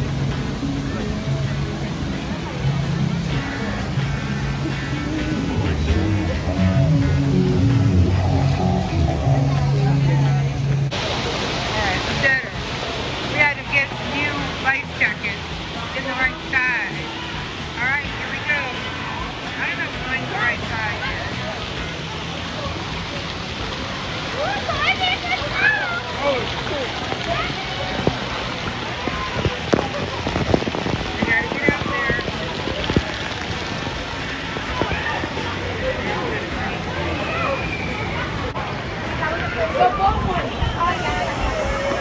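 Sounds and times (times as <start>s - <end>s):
people's voices: 0.0s - 42.0s
water rushing and splashing: 0.0s - 42.0s.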